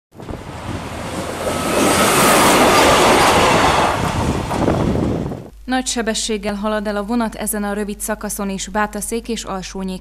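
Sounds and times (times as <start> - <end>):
train wheels rushing on rails: 0.2 - 5.4.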